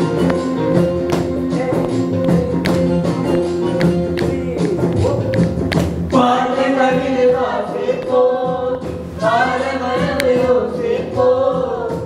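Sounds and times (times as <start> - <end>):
group singing in harmony: 6.1 - 12.0.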